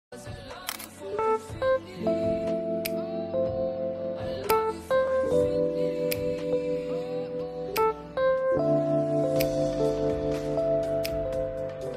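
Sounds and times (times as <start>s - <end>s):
background music: 0.1s - 11.9s.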